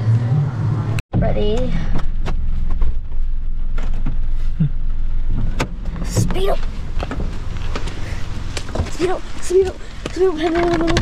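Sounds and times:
car engine rumble: 0:00.0 - 0:11.0.

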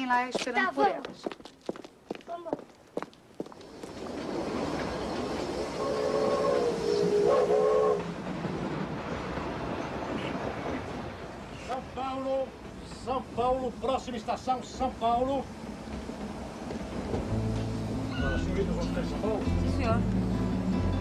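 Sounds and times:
footsteps on pavement: 0:00.0 - 0:04.3
train running on rails: 0:00.0 - 0:21.0
train whistle blasts: 0:05.7 - 0:08.1.

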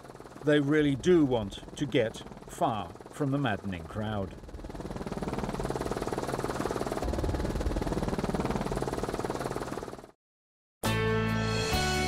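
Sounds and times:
helicopter rotor and engine: 0:00.0 - 0:10.2.

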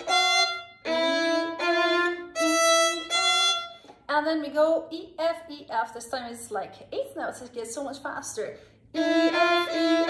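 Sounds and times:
solo violin bowed notes: 0:00.0 - 0:03.8, 0:09.0 - 0:10.0.

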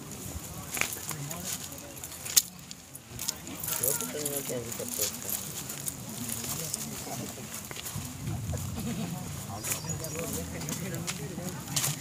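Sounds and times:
person speaking: 0:00.6 - 0:07.6.

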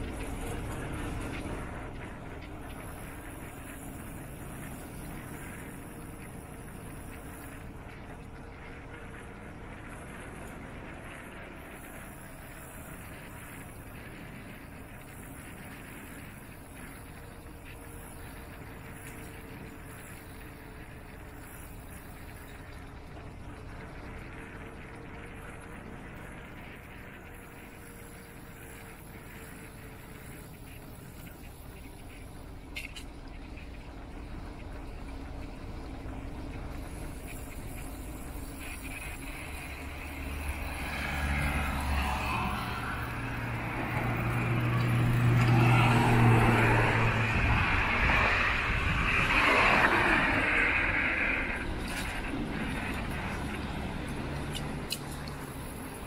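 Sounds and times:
faint outdoor hum: 0:00.0 - 0:56.0
vehicles passing on road: 0:00.0 - 0:56.0.

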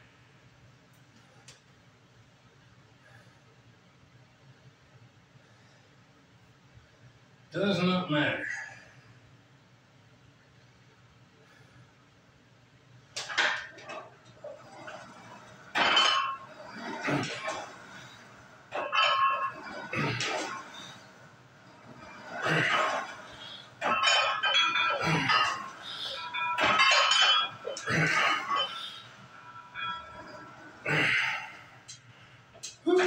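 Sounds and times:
metal bar and weight plates clinking: 0:13.2 - 0:21.1, 0:21.7 - 0:32.0.

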